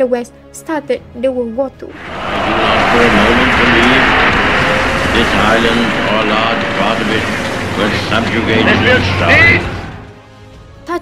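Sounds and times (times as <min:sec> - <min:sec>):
faint wavering drone: 0:01.9 - 0:10.2
warplane engines roaring: 0:01.9 - 0:10.3.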